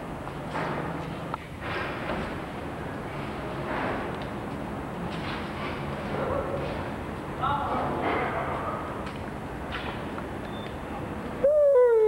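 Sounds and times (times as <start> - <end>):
hooted call sliding downward: 11.4 - 12.0.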